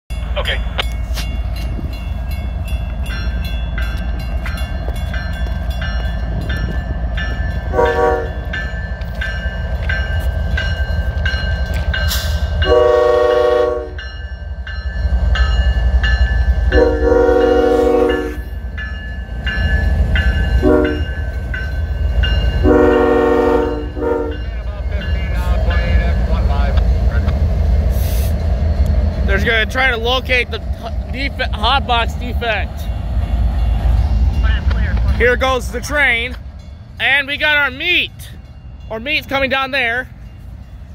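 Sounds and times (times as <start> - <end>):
diesel locomotives rumbling: 0.1 - 40.9
train horn: 7.7 - 8.5, 12.6 - 14.0, 16.7 - 18.5, 20.6 - 21.1, 22.6 - 24.5.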